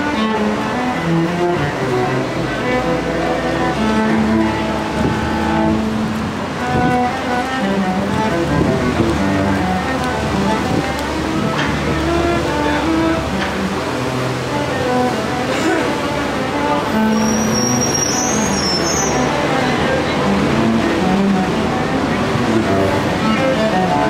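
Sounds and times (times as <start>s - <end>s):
bowed cello melody: 0.0s - 24.0s.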